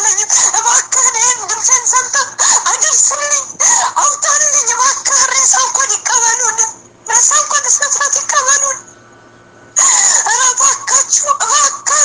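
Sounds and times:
high-pitched voice singing: 0:00.0 - 0:08.8, 0:09.8 - 0:12.0.

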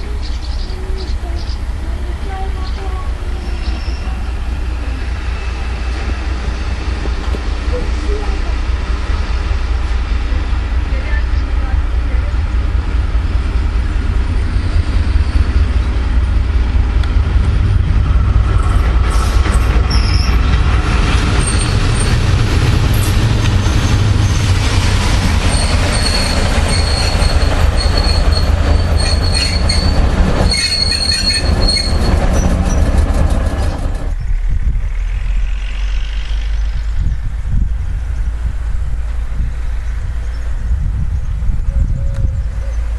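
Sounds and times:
railcar rumbling on track: 0:00.0 - 0:42.9
wheels squealing on rail: 0:02.8 - 0:08.5, 0:18.6 - 0:22.2, 0:22.9 - 0:34.3.

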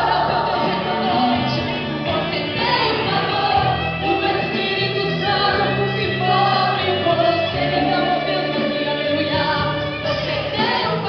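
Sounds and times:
musical accompaniment with bass: 0:00.0 - 0:11.0
woman singing into microphone: 0:00.0 - 0:11.0.

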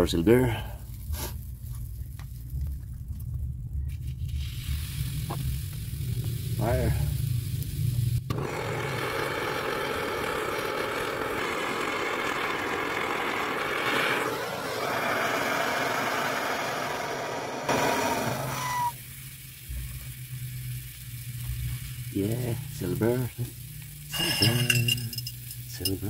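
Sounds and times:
gas torch flame rushing: 0:03.9 - 0:23.2.

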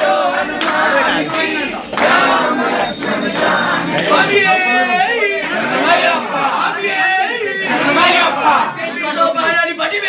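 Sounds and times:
overlapping loud voices: 0:00.0 - 0:06.7.

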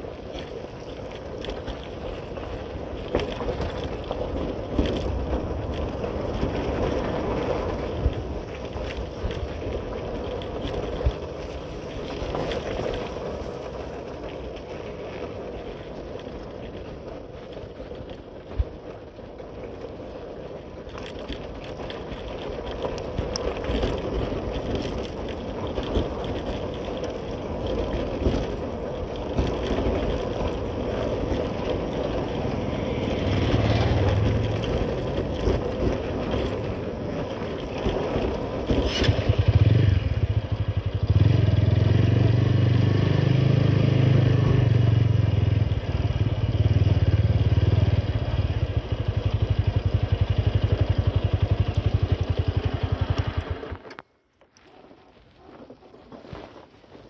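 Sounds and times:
tyres crunching on gravel: 0:00.0 - 0:41.3, 0:48.0 - 0:57.0
motorcycle engine running: 0:00.0 - 0:54.0.

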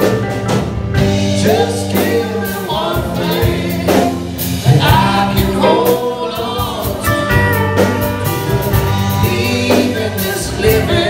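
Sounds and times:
bending lead guitar melody: 0:00.0 - 0:11.0
live blues-rock band: 0:00.0 - 0:11.0.

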